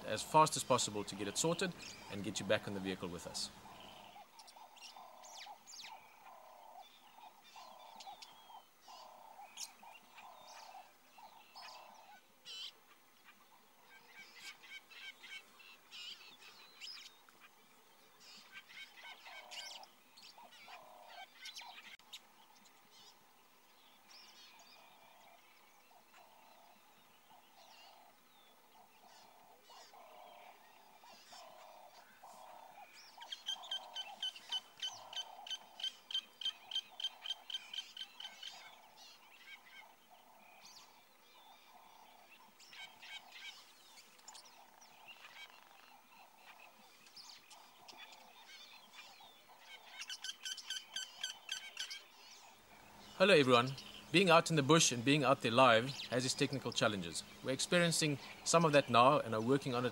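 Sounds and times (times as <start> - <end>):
low bird call: 24.2 - 59.9.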